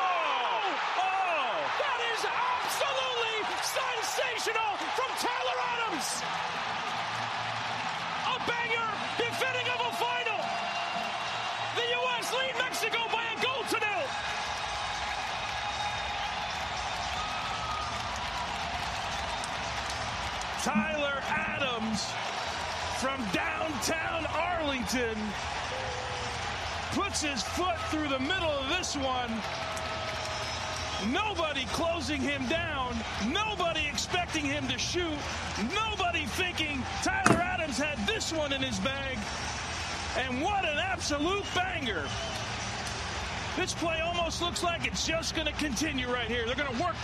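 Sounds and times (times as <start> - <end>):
stadium crowd din: 0.0 - 47.0
commentator speaking: 1.7 - 6.2, 20.6 - 22.2, 31.0 - 39.2.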